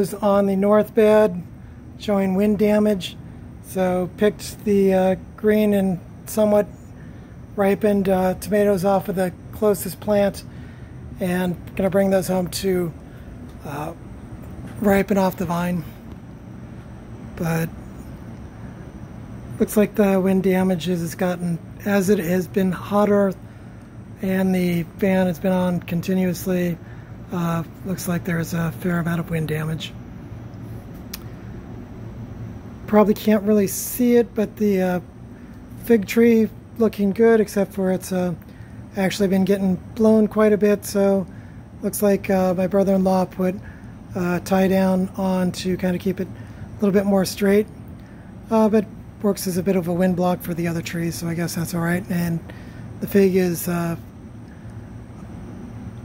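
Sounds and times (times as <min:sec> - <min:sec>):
fan humming: 0:00.0 - 0:56.0
sharp click: 0:30.5 - 0:31.3.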